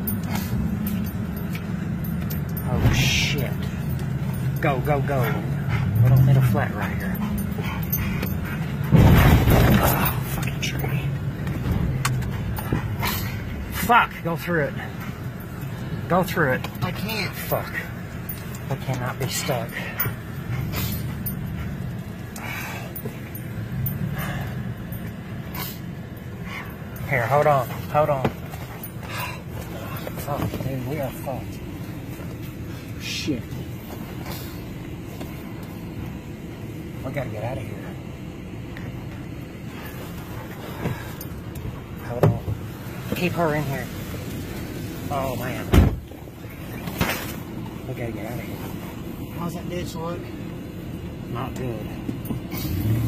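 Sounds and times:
low engine hum: 0:00.0 - 0:53.0.

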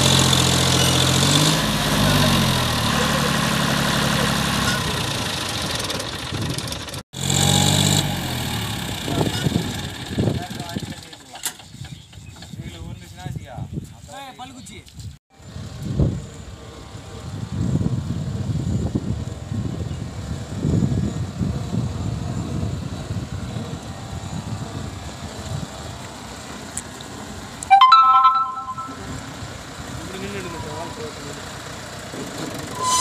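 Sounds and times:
multi-tone horn blast: 0:27.7 - 0:29.3.

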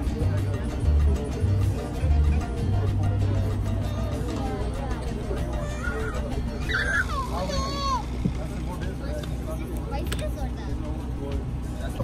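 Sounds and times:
background chatter: 0:00.0 - 0:12.0
child calling out: 0:05.6 - 0:08.0.

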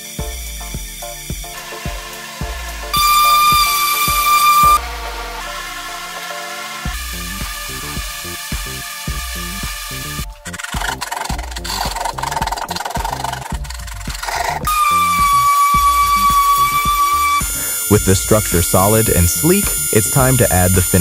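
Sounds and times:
background music: 0:00.0 - 0:21.0
high-pitched whine: 0:00.0 - 0:21.0
hand rasp on fiberglass: 0:01.5 - 0:21.0.

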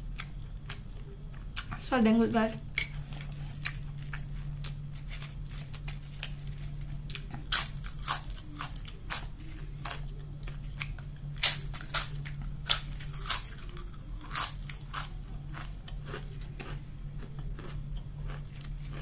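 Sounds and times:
potato chips crunching: 0:02.7 - 0:19.0.

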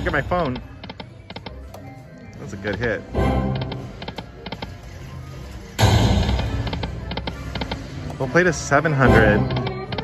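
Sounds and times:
slot machine game music: 0:00.0 - 0:10.0.

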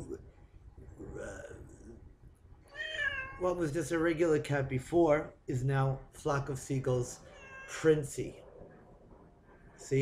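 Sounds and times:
cat meowing: 0:02.7 - 0:03.4, 0:07.2 - 0:07.9.

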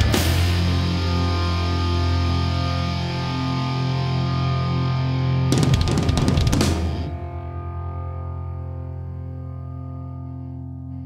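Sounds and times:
rock band music: 0:00.0 - 0:08.7
sustained guitar and bass chord: 0:00.0 - 0:11.0.

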